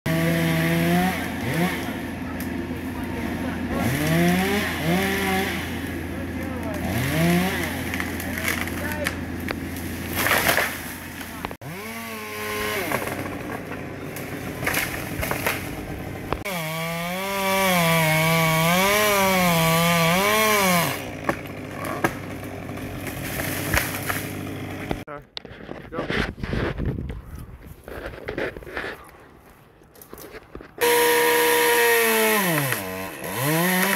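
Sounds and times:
chainsaw cutting wood: 0.1 - 25.1, 30.8 - 33.9.

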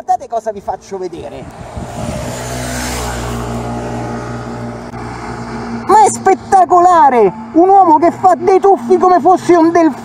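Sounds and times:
engine running steadily: 0.8 - 10.0.

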